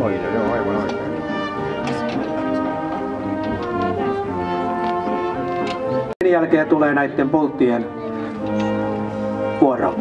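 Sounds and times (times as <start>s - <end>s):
man's voice over loudspeaker: 0.0s - 1.1s, 6.2s - 8.0s, 9.4s - 10.0s.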